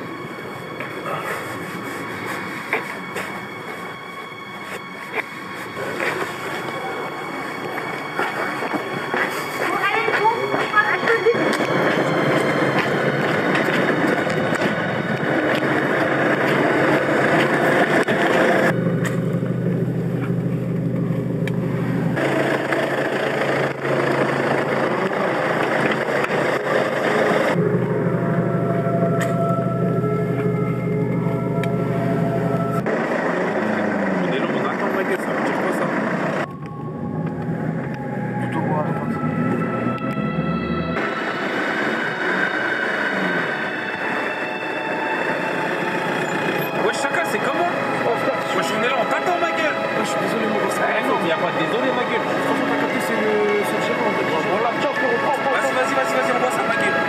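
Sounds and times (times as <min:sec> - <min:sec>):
indistinct voices: 0:00.0 - 0:57.0
street noise: 0:00.0 - 0:57.0
car engine running: 0:11.4 - 0:43.6.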